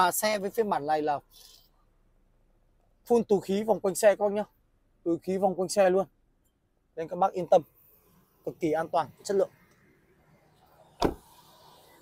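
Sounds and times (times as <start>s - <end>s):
car door shutting: 10.8s - 11.6s.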